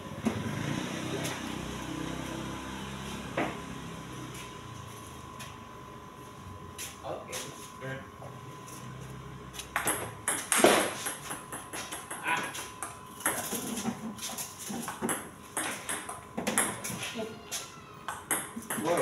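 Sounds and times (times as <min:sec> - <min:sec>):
table tennis ball clicking: 0:18.1 - 0:19.0.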